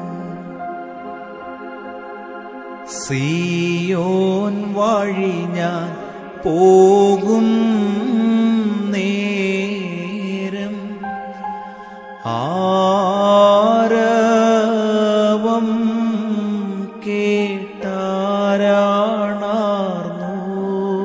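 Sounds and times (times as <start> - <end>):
man singing devotional song: 0.0 - 1.5, 2.8 - 21.0
keyboard accompaniment: 0.0 - 21.0
singer breathing: 11.4 - 12.2.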